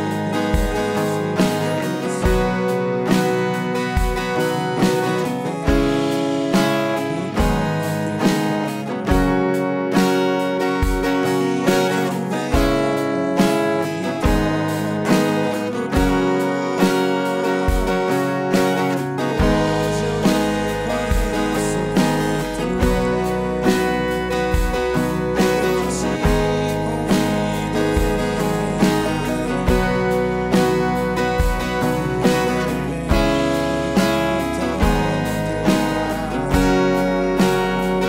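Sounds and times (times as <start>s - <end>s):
acoustic guitar strumming: 0.0s - 38.0s.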